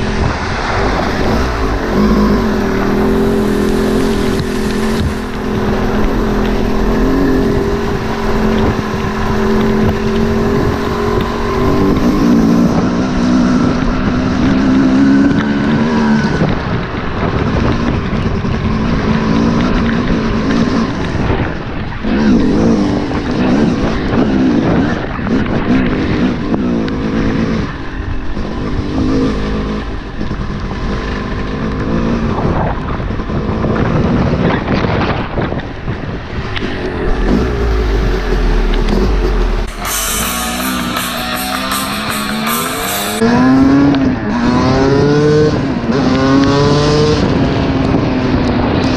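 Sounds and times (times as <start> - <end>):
rushing noise: 0.0 - 14.5, 36.0 - 44.6
dirt bike engine running: 0.0 - 44.2.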